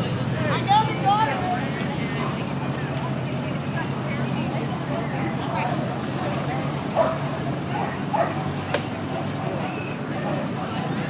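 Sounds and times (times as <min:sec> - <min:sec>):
murmur of people talking: 0:00.0 - 0:11.0
dog barking: 0:07.0 - 0:07.2, 0:07.8 - 0:08.4.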